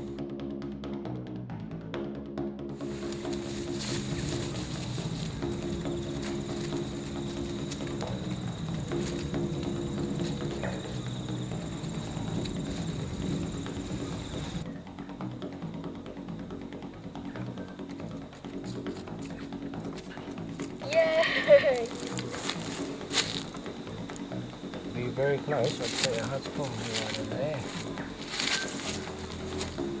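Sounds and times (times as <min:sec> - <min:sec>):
background music with low notes: 0:00.0 - 0:30.0.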